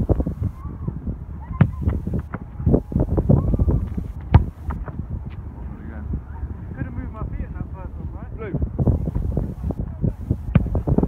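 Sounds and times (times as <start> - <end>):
wind rumbling on microphone: 0.0 - 11.0
football being kicked: 1.6 - 5.0, 10.5 - 11.0.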